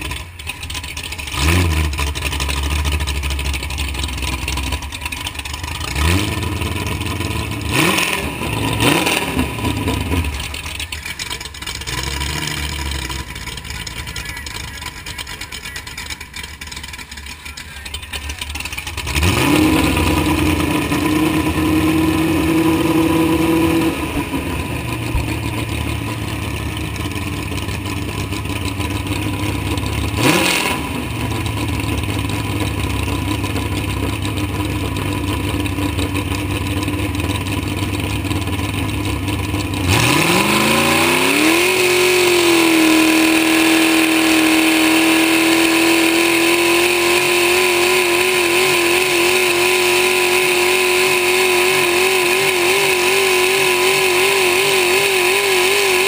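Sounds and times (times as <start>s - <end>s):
tractor engine revving: 0.0s - 56.0s.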